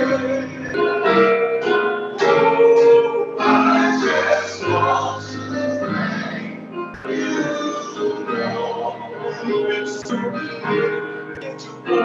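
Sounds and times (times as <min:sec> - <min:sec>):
man singing worship song: 0:00.0 - 0:01.3, 0:02.2 - 0:12.0
piano: 0:00.0 - 0:12.0.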